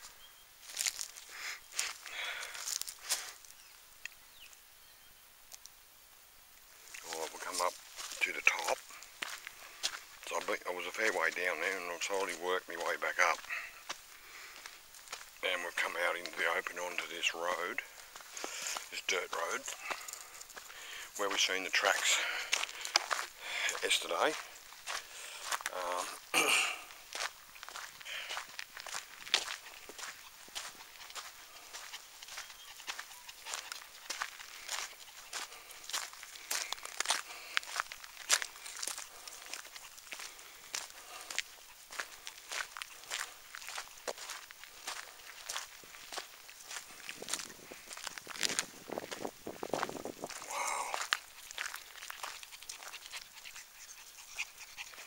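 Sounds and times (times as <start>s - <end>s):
footsteps on stony dirt road: 0.1s - 3.7s, 6.8s - 55.0s.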